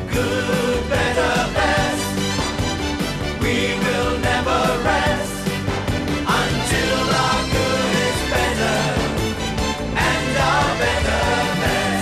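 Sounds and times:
instrumental backing: 0:00.0 - 0:12.0
voices singing a jingle: 0:00.1 - 0:02.2, 0:06.2 - 0:09.2, 0:10.0 - 0:12.0.

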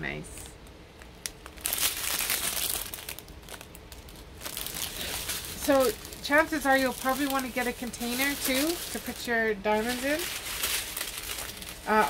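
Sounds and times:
plastic bags crinkling: 0:01.0 - 0:12.0.

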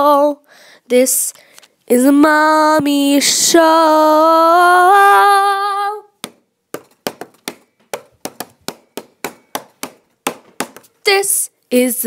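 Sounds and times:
hand claps: 0:06.2 - 0:10.9.

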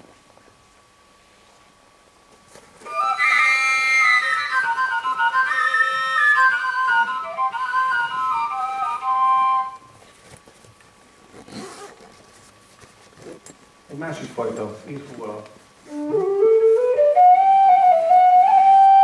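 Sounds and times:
overtone flutes playing melody: 0:02.8 - 0:09.9, 0:15.9 - 0:19.0.

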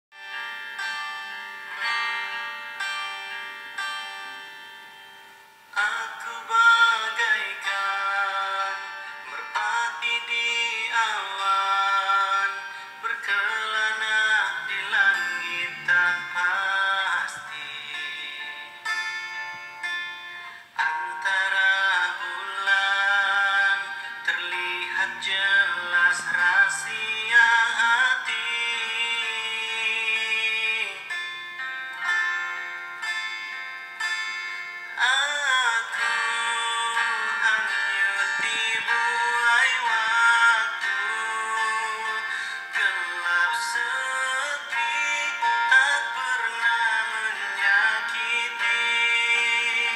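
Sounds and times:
pop song with singing: 0:05.6 - 0:49.9.

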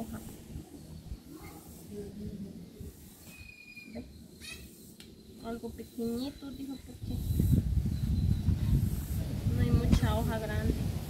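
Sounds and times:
bird whistle and chirp: 0:03.2 - 0:04.8
wind noise on microphone: 0:05.4 - 0:11.0.

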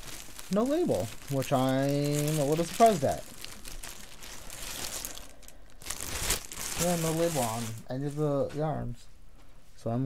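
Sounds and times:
plastic bag crinkling: 0:00.0 - 0:08.3.

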